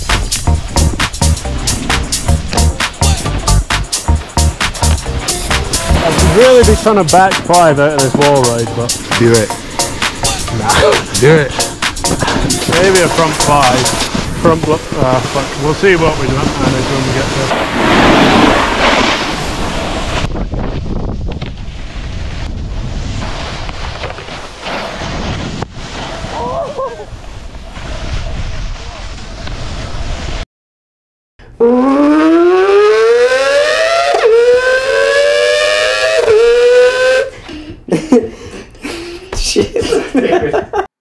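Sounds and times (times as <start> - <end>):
snowboard scraping on snow: 0.3 - 2.8, 4.0 - 30.4
rising horn-like tone: 4.3 - 7.2, 31.6 - 37.3
wind on microphone: 12.0 - 30.4.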